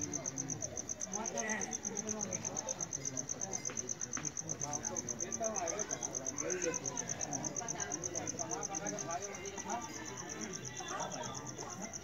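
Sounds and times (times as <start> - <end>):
crickets chirping: 0.0 - 12.0
faint voices: 0.0 - 12.0.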